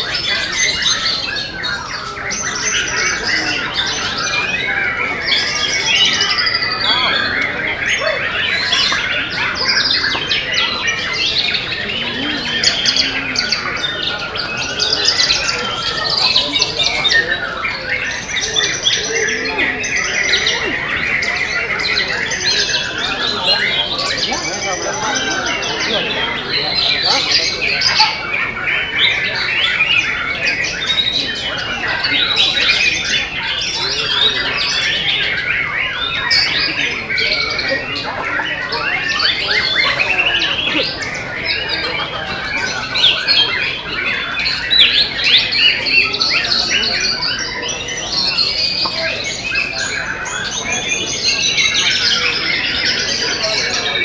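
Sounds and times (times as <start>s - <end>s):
songbirds whistling and trilling: 0.0s - 54.0s.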